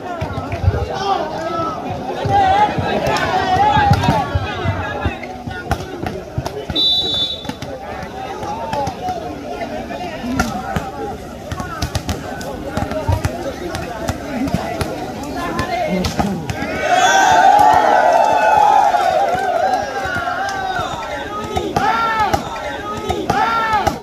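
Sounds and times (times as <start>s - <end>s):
crowd shouting: 0.0s - 24.0s
crowd voices: 0.0s - 24.0s
hands smacking volleyballs: 17.6s - 24.0s.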